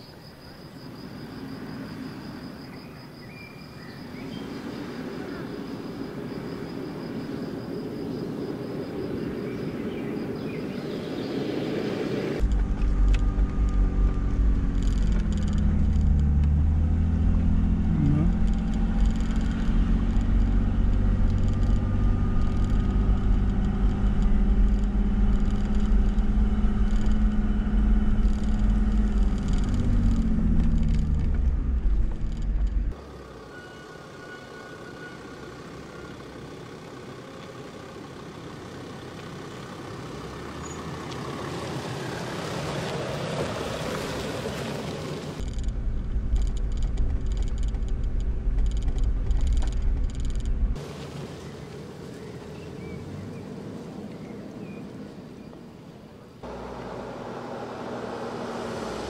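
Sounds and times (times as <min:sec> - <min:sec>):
distant vehicle: 0:00.0 - 0:59.0
wind rumble on camera: 0:04.1 - 0:33.0, 0:42.9 - 0:50.9
car engine driving: 0:12.2 - 0:33.6, 0:35.0 - 0:59.0.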